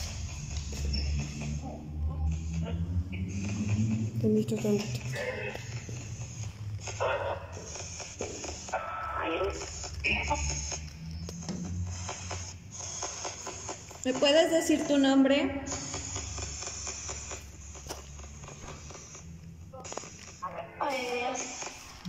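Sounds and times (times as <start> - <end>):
muffled voices murmuring: 1.4 - 10.9.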